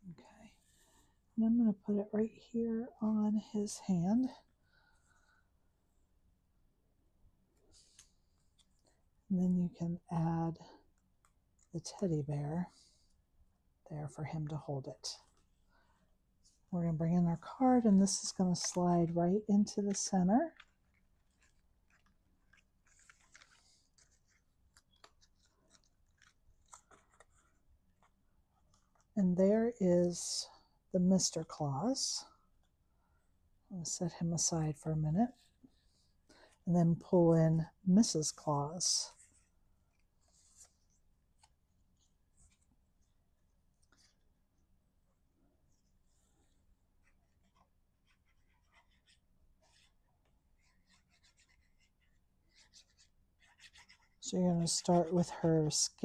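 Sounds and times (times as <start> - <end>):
cardstock rustles and clicks: 19.9 - 29.1.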